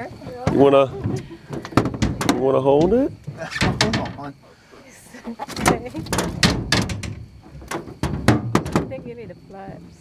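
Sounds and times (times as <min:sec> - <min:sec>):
short knocks and clatters: 0:00.4 - 0:04.3, 0:05.5 - 0:09.1.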